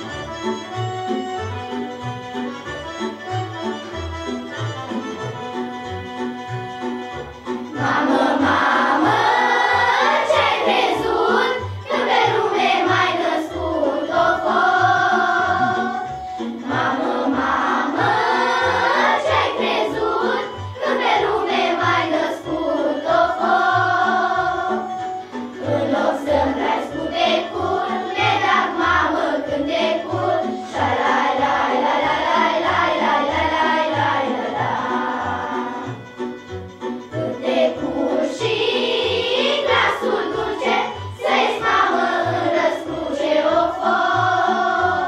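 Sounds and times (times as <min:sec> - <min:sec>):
girls choir singing: 0:07.7 - 0:36.0, 0:37.1 - 0:45.0.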